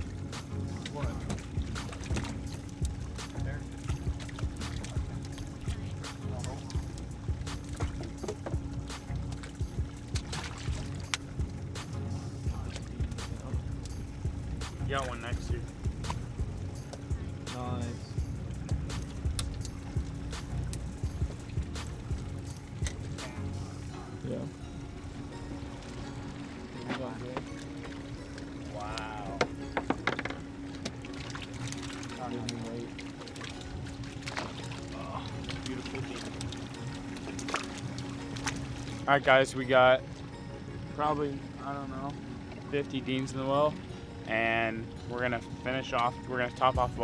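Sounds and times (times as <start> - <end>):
low hum: 0.0 - 47.0
water pouring: 30.7 - 39.8.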